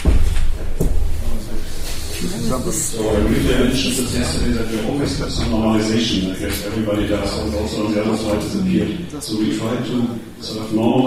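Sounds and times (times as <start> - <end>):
microphone handling thumps: 0.0 - 2.2, 3.0 - 5.9.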